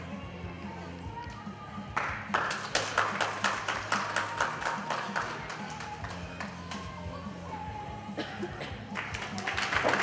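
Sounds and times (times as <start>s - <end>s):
background music: 0.0s - 10.0s
hand clapping: 1.9s - 6.9s, 8.9s - 10.0s.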